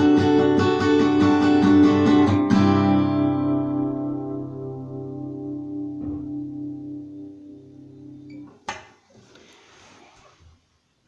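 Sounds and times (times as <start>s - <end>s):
acoustic guitar chord ringing: 0.0s - 8.5s
faint rustling of handling: 9.0s - 10.8s.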